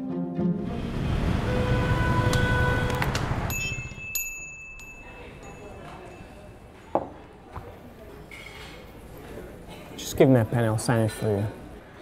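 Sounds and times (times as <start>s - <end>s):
loud rumbling rush: 0.6s - 3.5s
thin high ringing tone: 3.5s - 6.9s.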